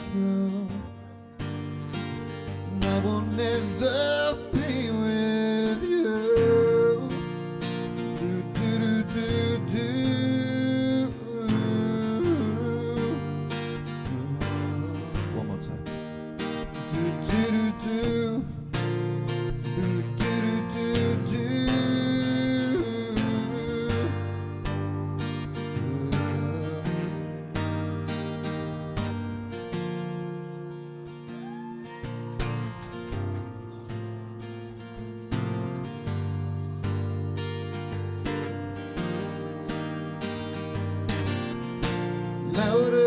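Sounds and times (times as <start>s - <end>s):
acoustic guitar strummed: 0.0s - 43.0s.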